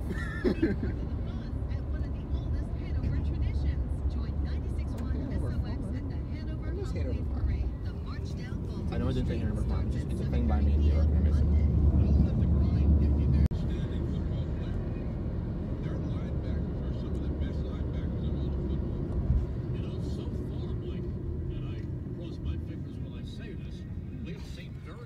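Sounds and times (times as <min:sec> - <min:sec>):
car road noise rumble: 0:00.0 - 0:25.0.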